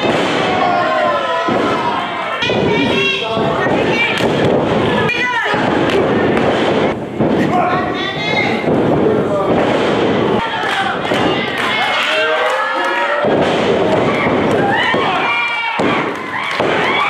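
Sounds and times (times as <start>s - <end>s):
people shouting: 0.0s - 4.3s, 10.4s - 17.0s.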